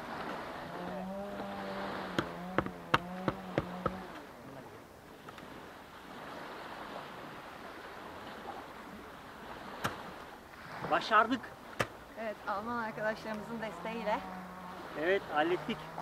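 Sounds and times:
plastic boards knocking: 2.2 - 4.0.

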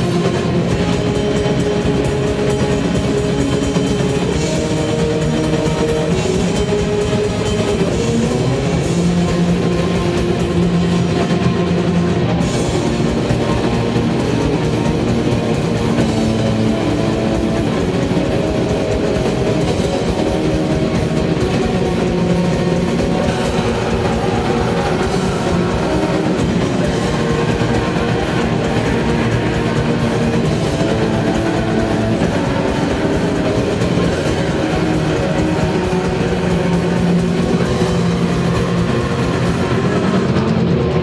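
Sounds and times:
distorted electric guitars: 0.0 - 41.0
drums: 0.0 - 41.0.

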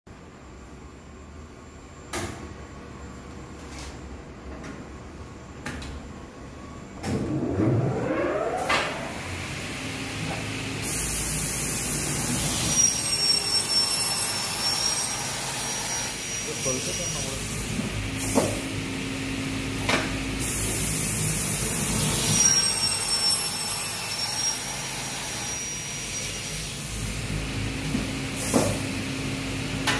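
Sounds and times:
saw cutting aluminium: 12.4 - 17.4, 22.2 - 26.7
saw blade motor whine: 12.6 - 17.4, 22.2 - 26.7.

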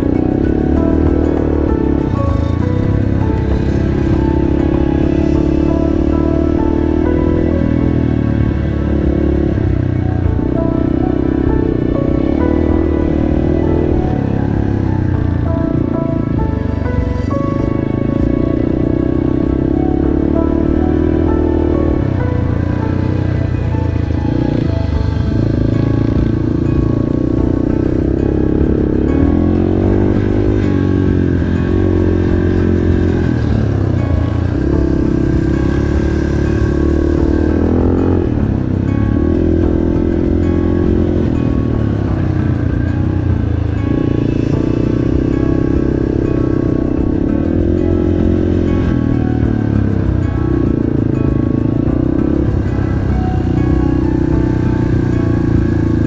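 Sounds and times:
motorbike engine revving: 0.0 - 56.0
music playing: 0.0 - 56.0.

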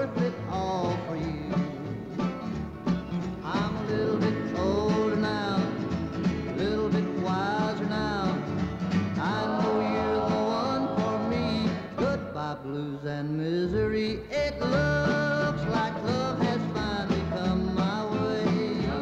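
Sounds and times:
man singing country song: 0.0 - 19.0
plucked upright bass: 0.0 - 19.0
strummed acoustic guitars: 0.0 - 19.0.

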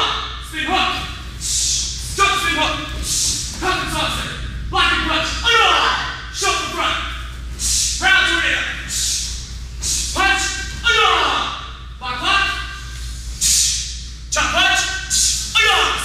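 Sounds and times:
short hissing bursts: 1.3 - 2.2, 7.5 - 8.1, 8.8 - 10.5, 13.0 - 14.1
people shouting short calls: 10.1 - 12.8.

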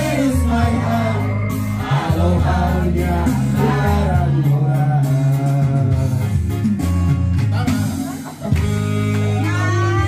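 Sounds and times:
man singing into microphone: 0.0 - 6.5
backing music with bass line: 0.0 - 10.0.

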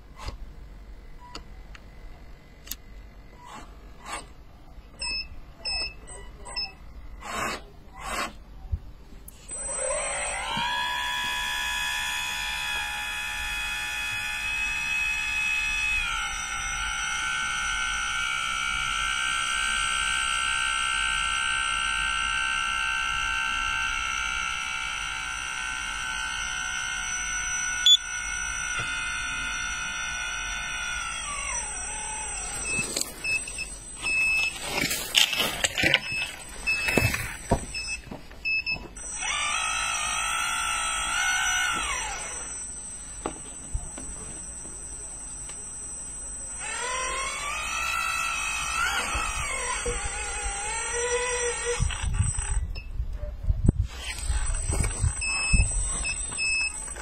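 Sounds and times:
electric motor whining: 9.3 - 38.1, 38.7 - 52.9, 53.7 - 57.0.

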